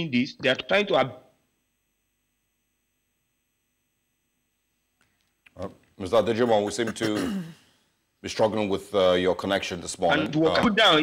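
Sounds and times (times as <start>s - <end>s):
person speaking: 5.5s - 7.6s.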